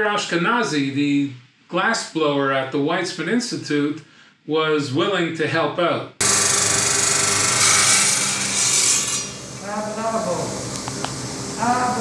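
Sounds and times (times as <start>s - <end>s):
disc saw grinding hiss: 6.2s - 12.0s.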